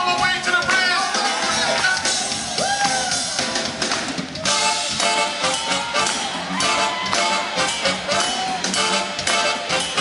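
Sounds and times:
live funk band: 0:00.0 - 0:10.0
saxophone section: 0:04.4 - 0:10.0.

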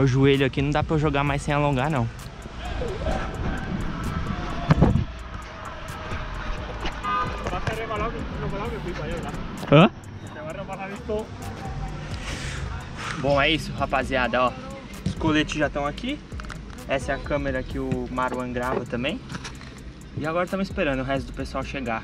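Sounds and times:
steady low rumble: 0:00.0 - 0:22.0
faint distant voices: 0:01.8 - 0:19.3.

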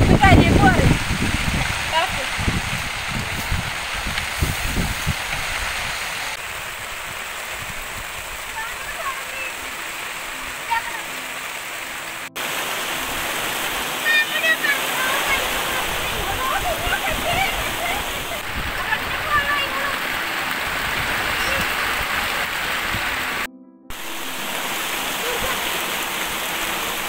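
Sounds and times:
heavy rain pouring: 0:00.0 - 0:27.0.

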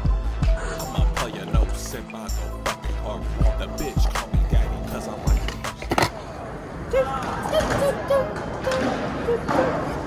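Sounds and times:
hip-hop beat with heavy bass: 0:00.0 - 0:06.0
skateboard wheels rolling on concrete: 0:00.6 - 0:10.0
skateboard clacks: 0:03.8 - 0:06.2.

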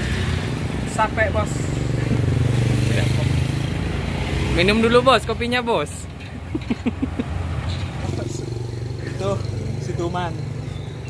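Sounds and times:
motorcycle: 0:00.0 - 0:11.0
road traffic hum: 0:00.0 - 0:11.0.

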